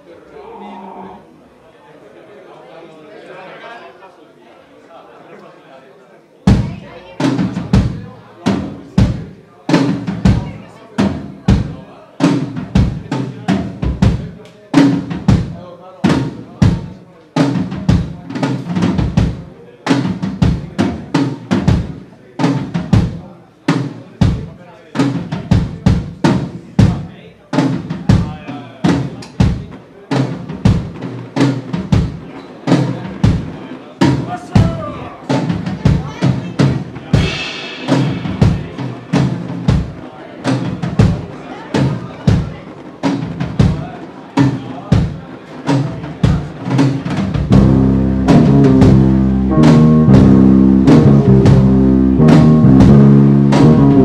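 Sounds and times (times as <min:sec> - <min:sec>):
drum kit fast beat: 0:06.5 - 0:54.0
bass guitar: 0:47.4 - 0:54.0
baritone saxophone: 0:47.5 - 0:54.0.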